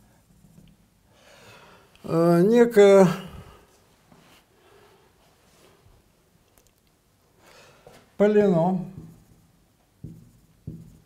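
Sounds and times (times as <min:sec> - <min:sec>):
marker writing on whiteboard: 0:08.4 - 0:11.0.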